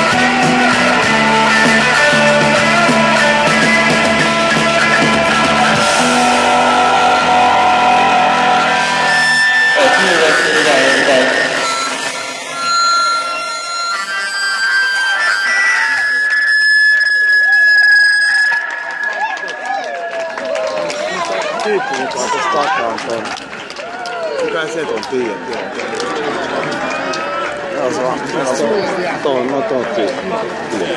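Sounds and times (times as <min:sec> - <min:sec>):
psychedelic rock band playing: 0:00.0 - 0:21.6
guitars ringing high tone: 0:00.0 - 0:22.3
people's voices: 0:00.0 - 0:30.9.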